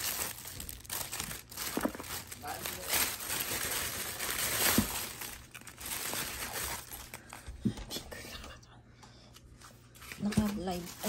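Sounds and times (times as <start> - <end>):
plastic bag rustling: 0.0 - 7.5, 10.0 - 11.0.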